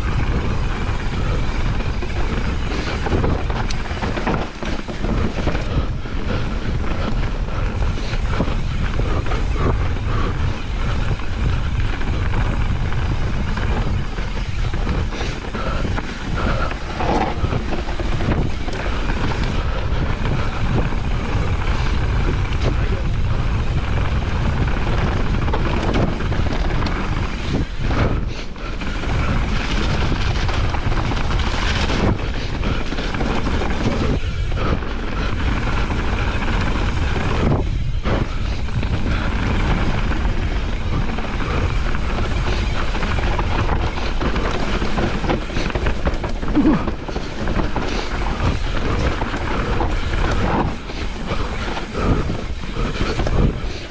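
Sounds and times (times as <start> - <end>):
bike rattling and knocking: 0.0 - 53.9
tyres rumbling on dirt: 0.0 - 53.9
wind buffeting microphone: 0.0 - 53.9.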